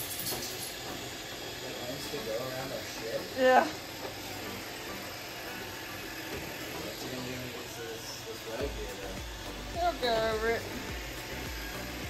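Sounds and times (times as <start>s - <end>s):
robot vacuum running on hard floor: 0.0s - 12.0s.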